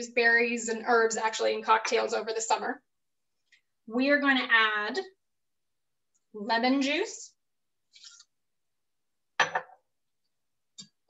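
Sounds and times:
glass bottle clink: 0:09.4 - 0:09.8.

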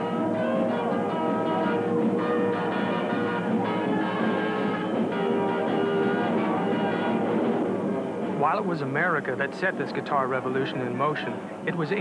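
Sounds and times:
electric guitar: 0:00.0 - 0:08.4.

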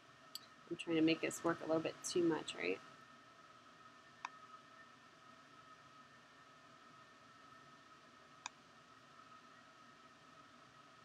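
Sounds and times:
steady high hum: 0:00.0 - 0:11.0
computer mouse click: 0:04.2 - 0:04.4.

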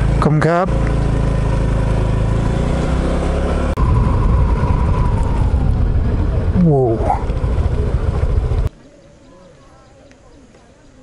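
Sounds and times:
scooter engine running: 0:00.0 - 0:08.7
wind noise on microphone: 0:03.8 - 0:08.7.

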